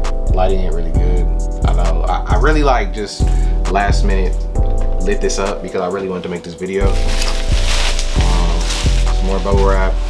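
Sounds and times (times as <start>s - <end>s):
background music with steady beat: 0.0s - 10.0s
bubble wrap crinkling: 6.6s - 10.0s.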